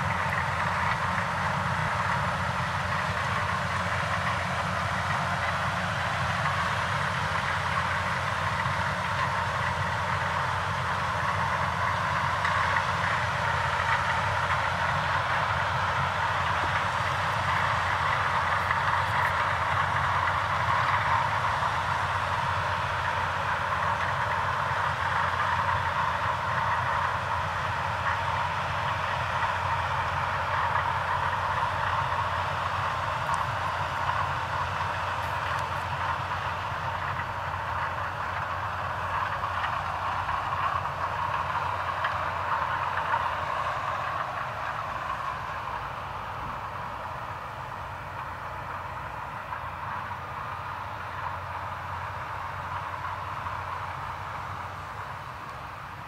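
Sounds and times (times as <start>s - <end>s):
combine harvester running: 0.0s - 56.0s.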